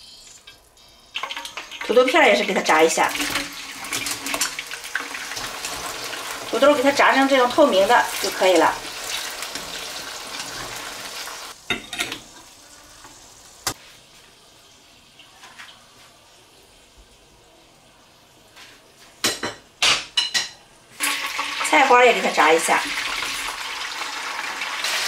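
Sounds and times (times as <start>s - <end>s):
food sizzling in hot oil: 0.0s - 17.3s, 20.9s - 25.0s.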